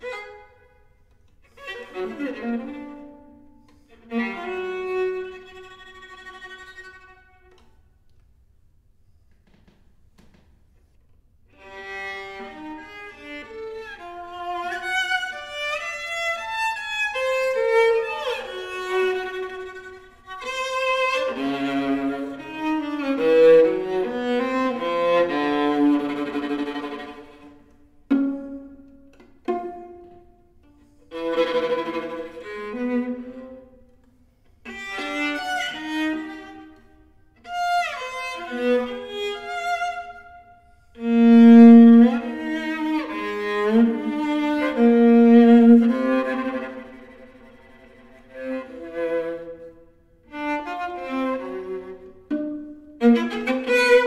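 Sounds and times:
solo viola playing: 0.0s - 7.8s, 11.5s - 54.0s.

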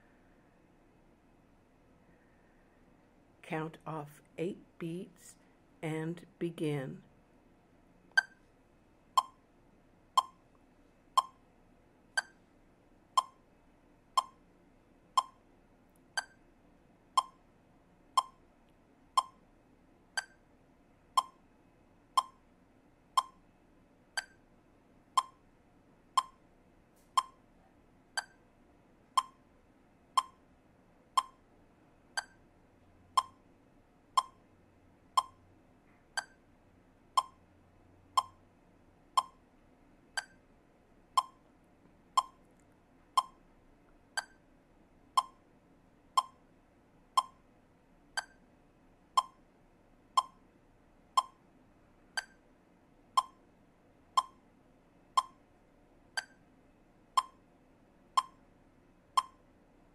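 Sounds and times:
metronome clicking: 8.2s - 8.4s, 9.2s - 9.4s, 10.2s - 10.4s, 11.2s - 11.4s, 12.2s - 12.4s, 13.2s - 13.4s, 14.2s - 14.4s, 15.2s - 15.4s, 16.2s - 16.4s, 17.2s - 17.4s, 18.2s - 18.4s, 19.2s - 19.4s, 20.2s - 20.4s, 21.2s - 21.4s, 22.2s - 22.4s, 23.2s - 23.4s, 24.2s - 24.4s, 25.2s - 25.4s, 26.2s - 26.4s, 27.2s - 27.4s, 28.2s - 28.4s, 29.2s - 29.4s, 30.2s - 30.4s, 31.2s - 31.4s, 32.2s - 32.4s, 33.2s - 33.4s, 34.2s - 34.4s, 35.2s - 35.4s, 36.2s - 36.4s, 37.2s - 37.4s, 38.2s - 38.4s, 39.2s - 39.4s, 40.2s - 40.4s, 41.2s - 41.4s, 42.2s - 42.4s, 43.2s - 43.4s, 44.2s - 44.4s, 45.2s - 45.4s, 46.2s - 46.4s, 47.2s - 47.4s, 48.2s - 48.4s, 49.2s - 49.4s, 50.2s - 50.4s, 51.2s - 51.4s, 52.2s - 52.4s, 53.2s - 53.4s, 54.2s - 54.4s, 55.2s - 55.4s, 56.2s - 56.4s, 57.2s - 57.4s, 58.2s - 58.4s, 59.2s - 59.4s.

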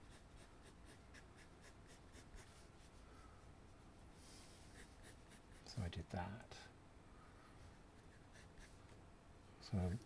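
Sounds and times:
pencil scratching on paper: 0.0s - 2.9s, 4.3s - 5.8s, 8.0s - 8.8s.

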